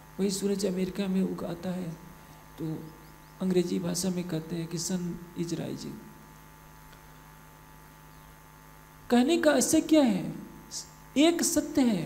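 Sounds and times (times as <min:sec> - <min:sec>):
faint electrical hum and hiss: 0:00.0 - 0:12.0.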